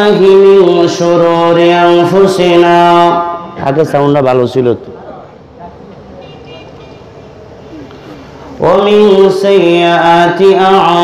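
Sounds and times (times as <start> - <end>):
faint distant voices: 4.7 - 9.8.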